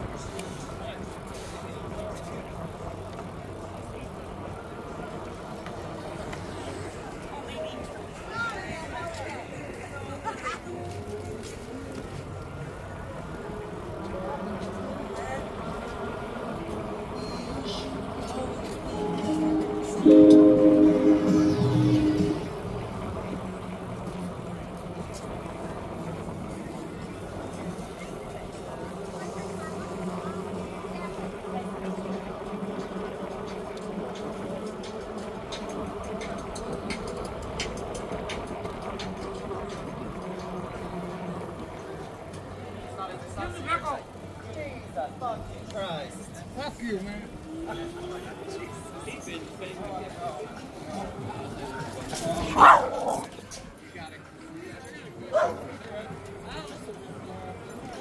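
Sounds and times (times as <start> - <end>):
indistinct voices of passers-by: 0.0 - 58.0.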